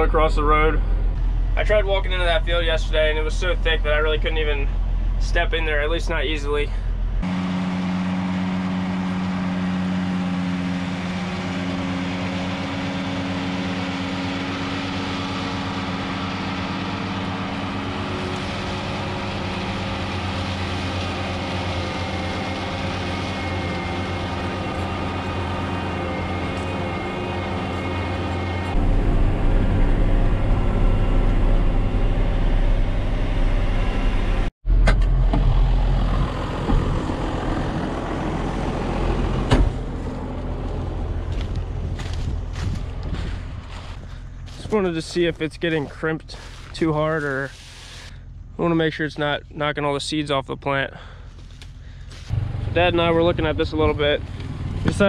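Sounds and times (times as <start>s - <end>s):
tractor engine under load: 0.0s - 48.9s.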